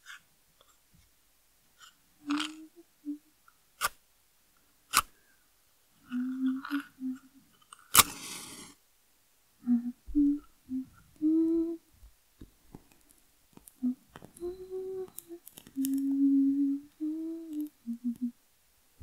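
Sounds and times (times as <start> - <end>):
woman humming: 2.2 - 3.3, 6.0 - 7.4, 9.6 - 11.9, 13.8 - 18.4
faint clicks: 12.4 - 16.2, 16.9 - 18.3.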